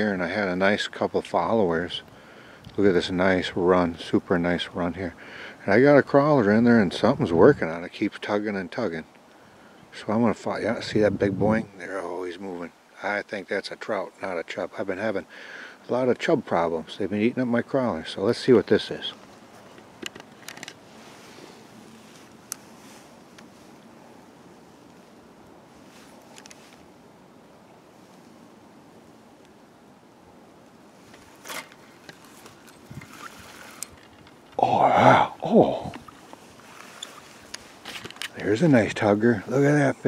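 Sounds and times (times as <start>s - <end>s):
stream hissing: 0.0s - 4.0s, 4.6s - 5.8s, 14.9s - 16.0s, 17.9s - 40.0s
fishing rod and line clicks: 31.3s - 34.6s, 35.9s - 38.4s
man exclaiming: 34.6s - 36.0s.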